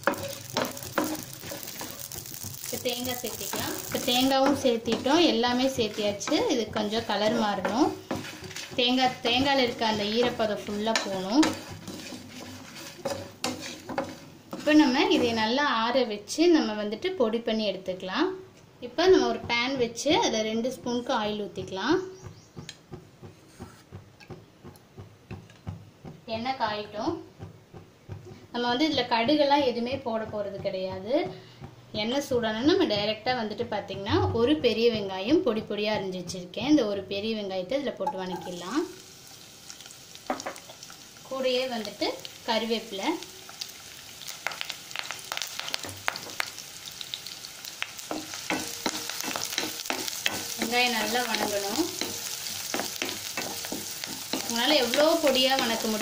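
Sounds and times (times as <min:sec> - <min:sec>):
spatula scraping a pan: 0:00.0 - 0:15.6, 0:19.2 - 0:26.2, 0:43.4 - 0:56.0
shallots sizzling in oil: 0:00.0 - 0:56.0.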